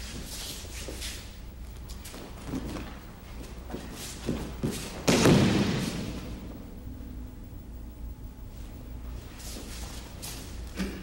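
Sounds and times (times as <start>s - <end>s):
body thud on mat: 4.3s - 6.2s.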